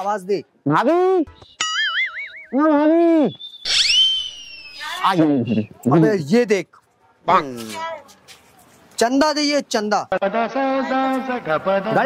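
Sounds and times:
high sliding whistle: 3.3 - 5.1.

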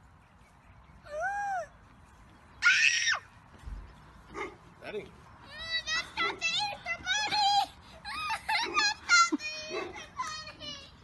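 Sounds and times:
child screaming shrilly: 2.6 - 3.3.

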